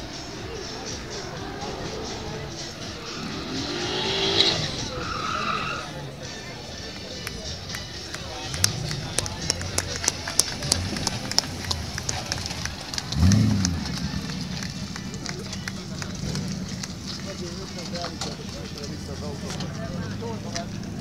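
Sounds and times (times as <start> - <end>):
car engine running: 0.0 - 6.0, 8.2 - 21.0
car engine revving: 0.0 - 6.4, 8.1 - 21.0.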